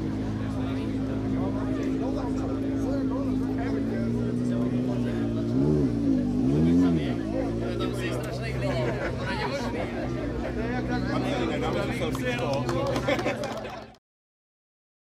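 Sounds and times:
car engine idling and revving: 0.0s - 13.4s.

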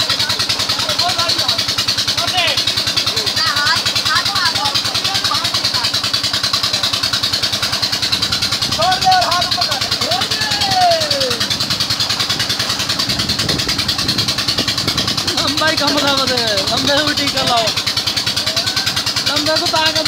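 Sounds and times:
pump engine running: 0.0s - 20.0s
water gushing from pipe: 0.0s - 20.0s
children shouting: 10.0s - 11.6s, 18.4s - 19.1s.

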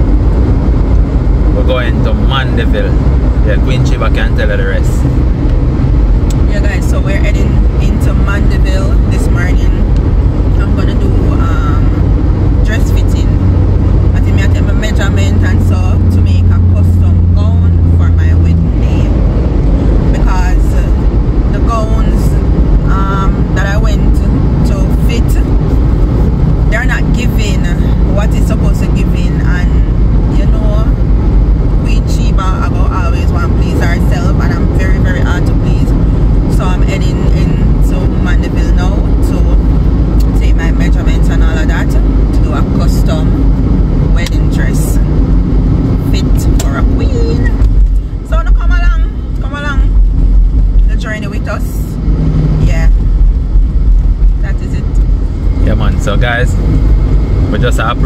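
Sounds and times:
car road and engine rumble: 0.0s - 58.0s
people talking: 1.6s - 5.1s, 6.3s - 9.9s, 10.6s - 12.0s, 12.6s - 13.4s, 14.2s - 19.2s, 20.1s - 25.6s, 26.7s - 31.0s, 31.8s - 35.9s, 36.5s - 39.6s, 40.2s - 43.4s, 44.2s - 45.0s, 46.0s - 49.9s, 50.8s - 52.0s, 52.6s - 53.0s, 54.4s - 55.0s, 55.6s - 56.6s, 57.5s - 58.0s.

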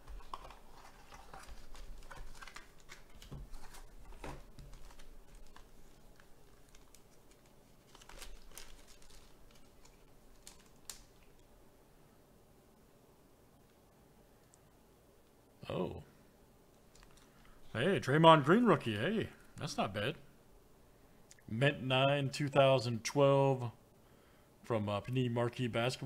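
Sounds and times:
plastic crinkling: 0.0s - 11.5s, 16.8s - 17.6s.

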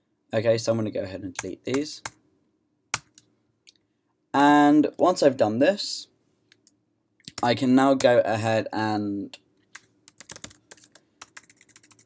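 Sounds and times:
computer keys clicking: 6.5s - 7.5s, 9.7s - 12.0s.

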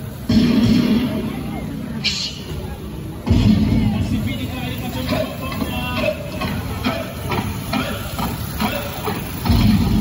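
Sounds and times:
crowd chatter: 0.0s - 10.0s
small motorcycles passing: 0.0s - 10.0s.

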